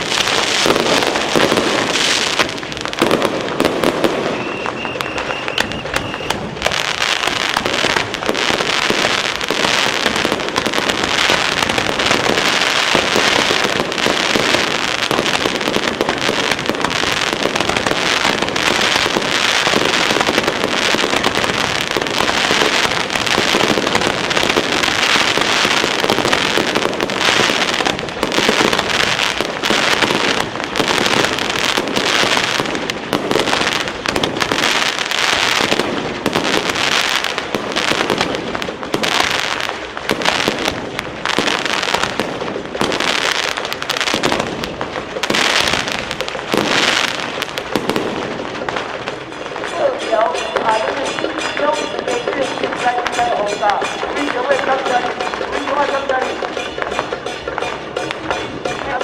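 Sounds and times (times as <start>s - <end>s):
fireworks crackling: 0.0s - 59.0s.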